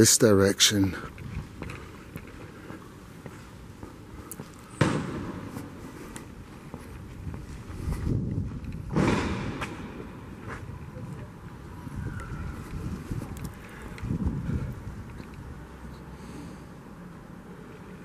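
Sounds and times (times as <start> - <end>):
city street ambience: 0.0 - 18.0.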